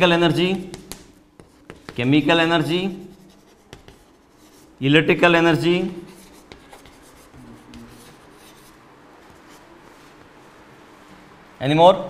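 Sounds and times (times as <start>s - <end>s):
chalk scratching on blackboard: 0.7s - 2.0s, 3.0s - 4.8s, 5.9s - 9.7s.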